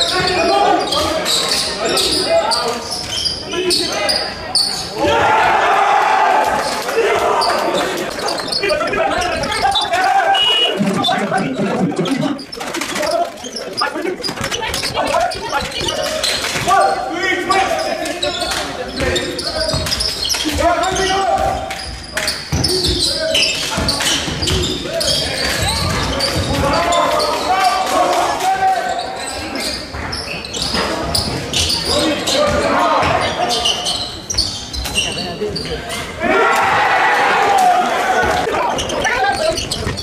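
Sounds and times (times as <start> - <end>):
players shouting: 4.9 - 12.5, 36.2 - 39.6.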